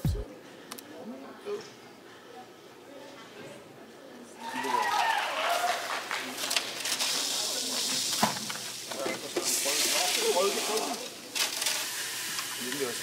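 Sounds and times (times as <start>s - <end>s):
sand pouring through a funnel: 6.8s - 8.2s, 9.4s - 13.0s.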